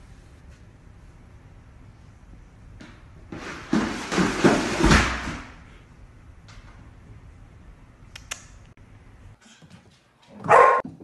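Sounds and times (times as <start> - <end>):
plastic basket tumbling down stairs: 3.3 - 5.6.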